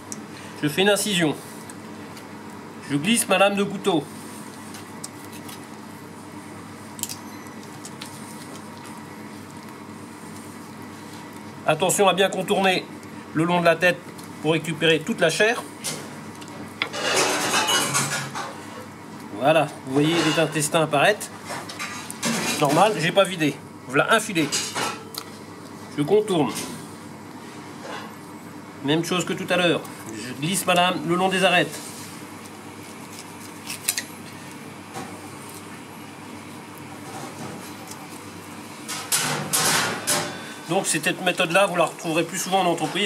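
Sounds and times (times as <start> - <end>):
steady background hum: 0.0 - 43.0.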